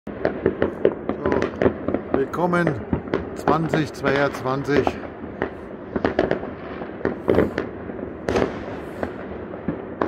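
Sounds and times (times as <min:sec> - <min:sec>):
fireworks and firecrackers banging: 0:00.1 - 0:10.0.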